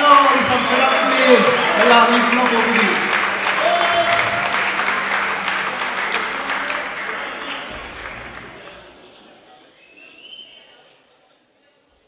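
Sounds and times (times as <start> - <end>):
audience applauding: 0.0 - 9.5.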